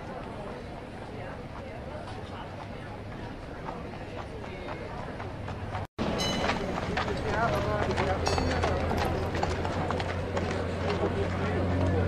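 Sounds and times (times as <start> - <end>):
street crowd chatter: 0.0 - 12.0
horse hooves clip-clopping on paving: 1.0 - 12.0.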